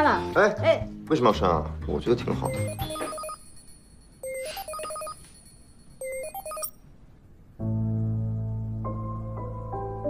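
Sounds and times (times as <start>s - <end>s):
mobile phone ringtone: 2.5s - 6.8s
background music with held chords: 7.6s - 10.0s.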